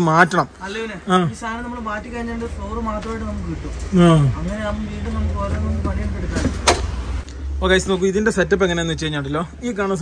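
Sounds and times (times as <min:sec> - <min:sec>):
man talking: 0:00.0 - 0:06.6, 0:07.5 - 0:10.0.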